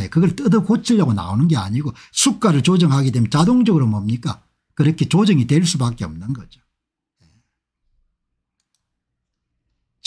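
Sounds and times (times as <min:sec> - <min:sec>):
very faint clicks: 0:08.5 - 0:09.8.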